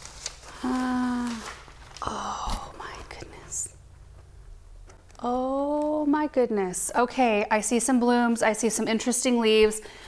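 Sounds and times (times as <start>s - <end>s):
woman whispering: 2.0s - 3.8s.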